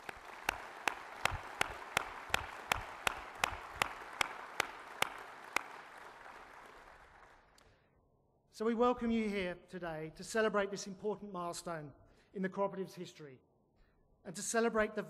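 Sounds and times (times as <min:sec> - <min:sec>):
audience applauding: 0:00.0 - 0:07.6
close hands clapping: 0:00.0 - 0:07.8.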